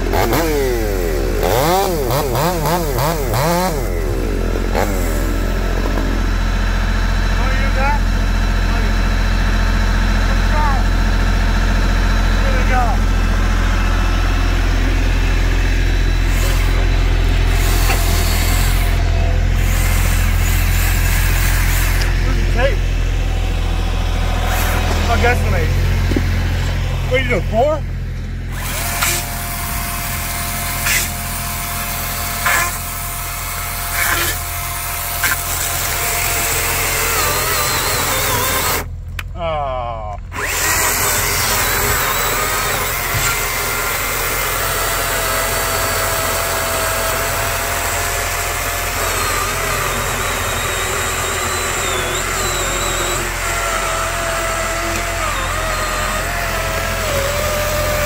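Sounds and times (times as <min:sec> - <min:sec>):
chainsaw cutting log: 0:00.0 - 0:39.3, 0:40.2 - 0:58.0
tractor engine idling: 0:00.0 - 0:58.0.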